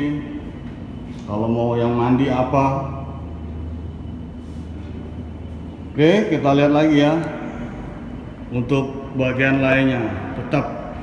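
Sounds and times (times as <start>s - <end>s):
ventilation system hum: 0.0s - 11.0s.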